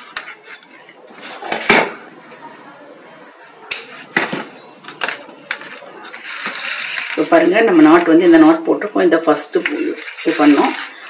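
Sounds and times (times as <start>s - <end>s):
person speaking: 5.2s - 11.0s.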